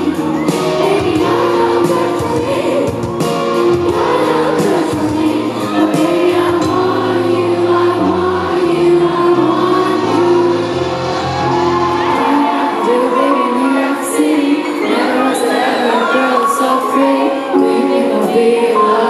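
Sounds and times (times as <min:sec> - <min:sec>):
drums: 0:00.0 - 0:07.0
woman singing lead: 0:00.0 - 0:11.0, 0:11.8 - 0:19.0
keyboards: 0:00.0 - 0:19.0
piano: 0:00.0 - 0:19.0.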